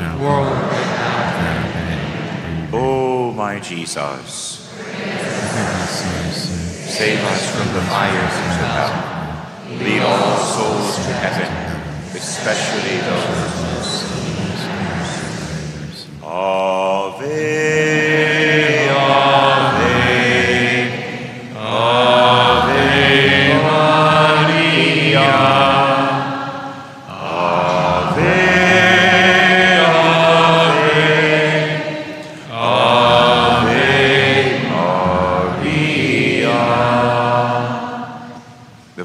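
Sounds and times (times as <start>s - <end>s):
person singing chant-like refrain: 0.0s - 39.0s.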